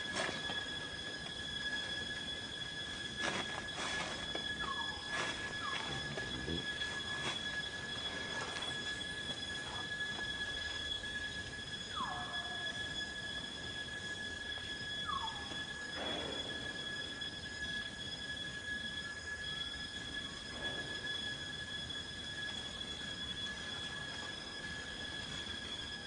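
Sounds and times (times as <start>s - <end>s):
forest insects droning: 0.0s - 26.0s.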